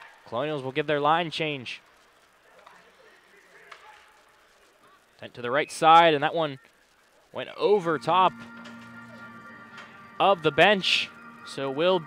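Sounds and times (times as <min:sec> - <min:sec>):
ice hockey arena sound: 0:00.0 - 0:12.0.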